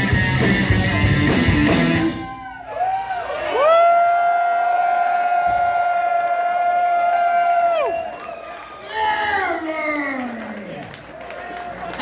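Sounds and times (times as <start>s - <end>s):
crowd cheering: 1.6s - 12.0s.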